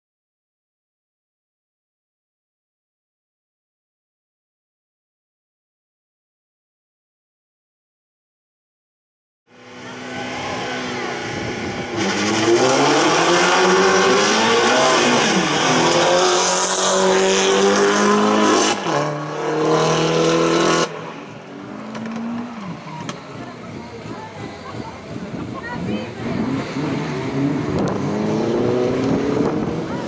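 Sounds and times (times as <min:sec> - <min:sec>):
race car engine accelerating: 0:09.5 - 0:30.0.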